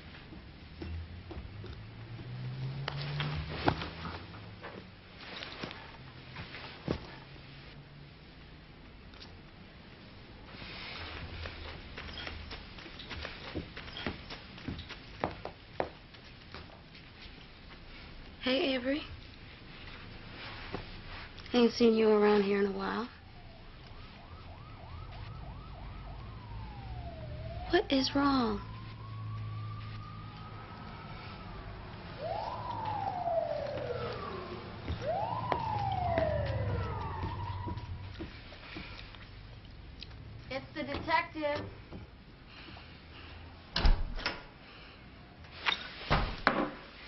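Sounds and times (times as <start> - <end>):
emergency vehicle siren wailing: 22.6 - 39.0.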